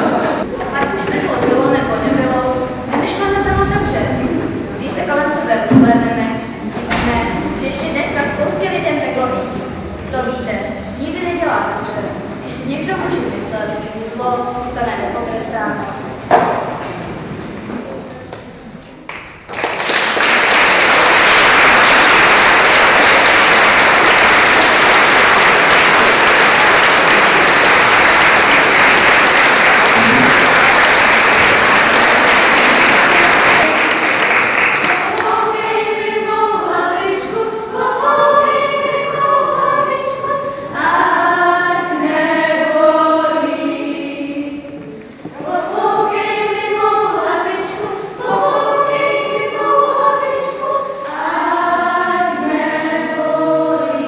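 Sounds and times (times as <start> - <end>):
audience applauding: 19.1 - 35.4
children singing together: 20.9 - 54.0.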